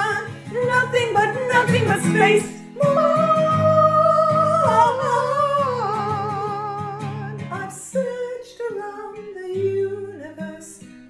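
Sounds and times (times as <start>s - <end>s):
person singing a song: 0.0s - 11.0s.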